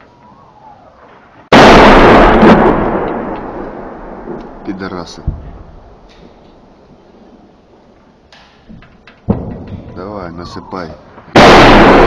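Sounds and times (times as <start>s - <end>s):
shell explosion: 1.0s - 6.7s, 8.4s - 12.0s.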